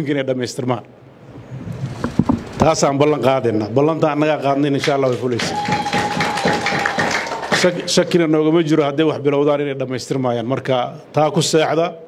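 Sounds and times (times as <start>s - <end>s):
audience applauding: 4.6s - 8.3s.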